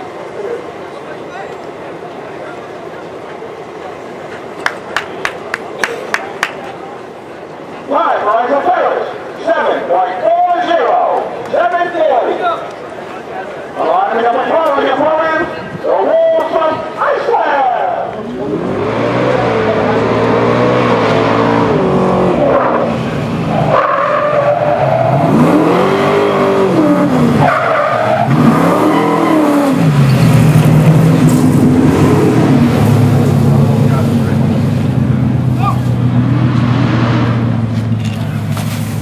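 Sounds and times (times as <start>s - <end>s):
engine revving: 18.3s - 38.8s.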